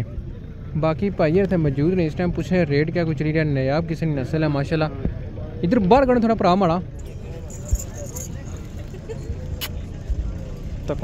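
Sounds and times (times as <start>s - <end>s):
men chattering: 4.2s - 11.0s
steady low rumble: 6.3s - 11.0s.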